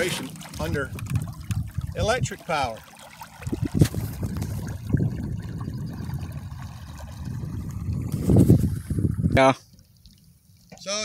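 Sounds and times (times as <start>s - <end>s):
wind rumbling on microphone: 0.0s - 2.7s, 3.3s - 9.7s
water lapping: 0.0s - 10.8s.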